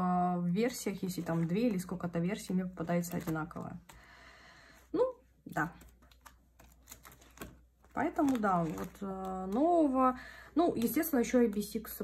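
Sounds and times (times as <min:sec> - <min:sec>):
plastic sleeves crinkling: 0:00.7 - 0:04.2, 0:04.8 - 0:12.0.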